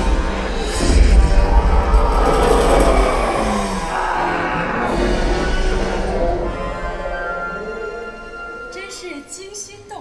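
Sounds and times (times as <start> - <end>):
deep rumble: 0.0 - 8.6
dramatic film music: 0.0 - 10.0.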